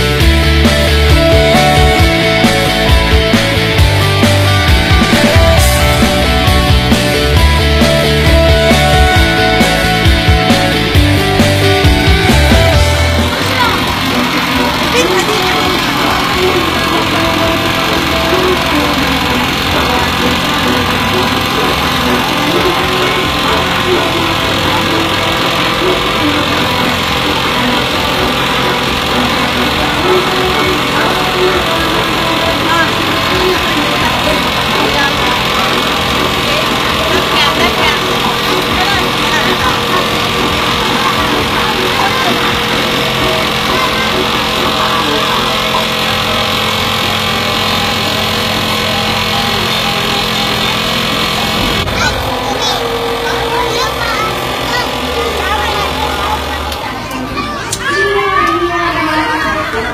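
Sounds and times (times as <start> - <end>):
cotton candy machine humming: 0.0 - 59.9
indistinct voices: 0.0 - 59.9
music: 0.0 - 59.9.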